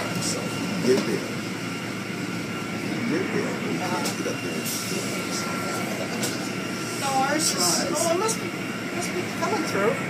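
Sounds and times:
car wash machinery whooshing: 0:00.0 - 0:10.0
faint high whine: 0:00.0 - 0:10.0.

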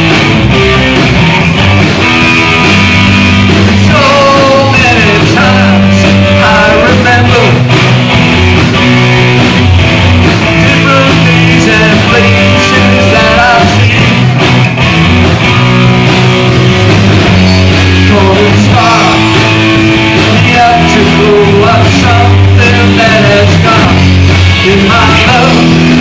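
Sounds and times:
drum kit: 0:00.0 - 0:26.0
electric guitars: 0:00.0 - 0:26.0.

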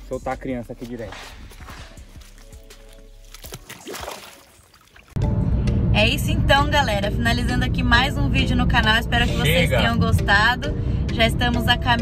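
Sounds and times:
background music: 0:00.0 - 0:12.0
water sloshing and splashing: 0:00.8 - 0:05.2.

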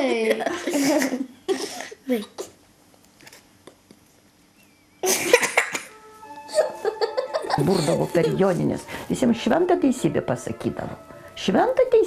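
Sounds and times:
person coughing: 0:05.0 - 0:05.9.

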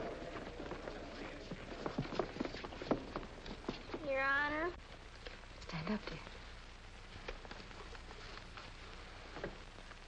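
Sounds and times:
shuffling footsteps: 0:00.0 - 0:04.3.

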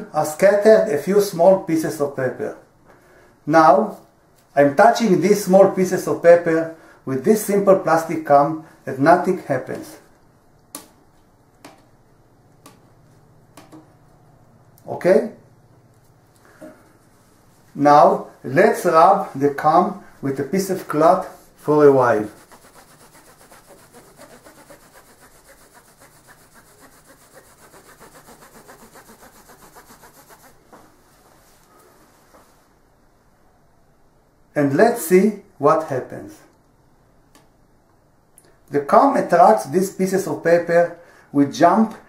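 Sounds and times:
cloth rubbing over plastic comb: 0:21.2 - 0:30.8.

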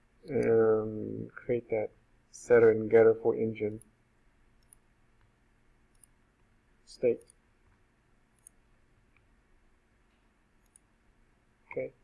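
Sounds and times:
computer mouse clicks: 0:00.2 - 0:00.6, 0:04.6 - 0:05.3, 0:05.9 - 0:06.2, 0:08.3 - 0:09.3, 0:10.6 - 0:10.9.

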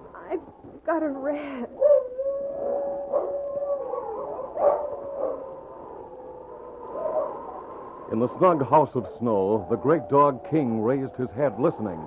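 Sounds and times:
wolf howling: 0:01.8 - 0:12.0.

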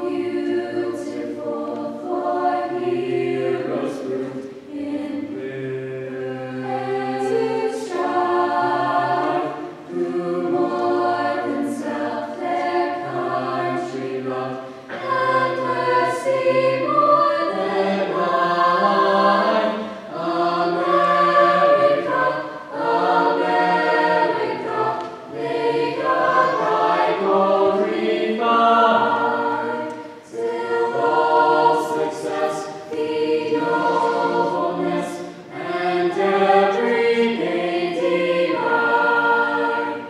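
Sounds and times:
choir singing in harmony: 0:00.0 - 0:40.0.

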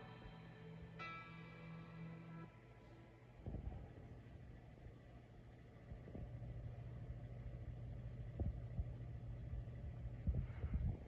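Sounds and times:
low steady hum: 0:00.0 - 0:11.0.

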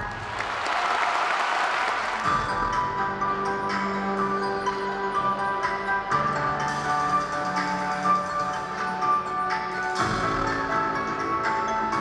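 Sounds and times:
audience applauding: 0:00.0 - 0:02.5
show music: 0:00.0 - 0:12.0.

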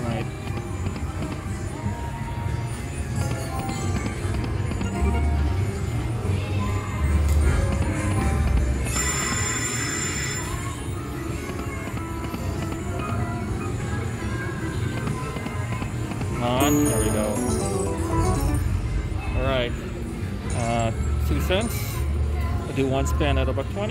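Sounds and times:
slot machine reel-spin music: 0:00.0 - 0:06.3, 0:07.0 - 0:14.6, 0:16.4 - 0:19.2
bright chiming jingle: 0:16.6 - 0:18.9.

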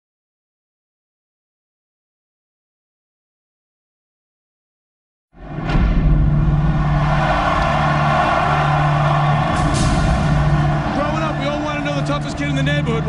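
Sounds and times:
crowd cheering: 0:05.4 - 0:13.0.

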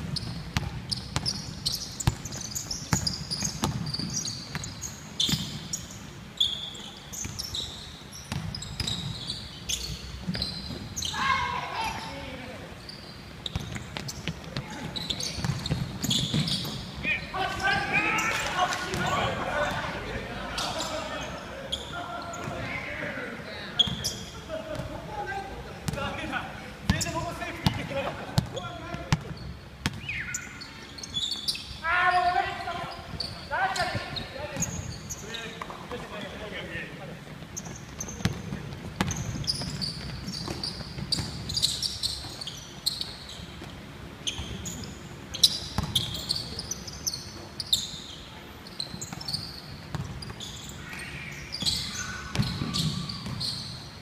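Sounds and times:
basketball bouncing on wooden floor: 0:02.0 - 0:04.7
players calling out: 0:14.5 - 0:29.4.

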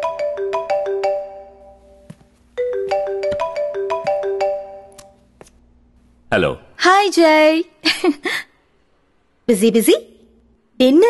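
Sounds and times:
marimba phone ringtone: 0:00.0 - 0:05.0.

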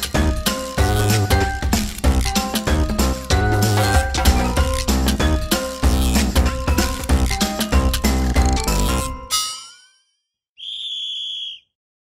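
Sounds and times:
high whistle blast: 0:10.6 - 0:11.6.

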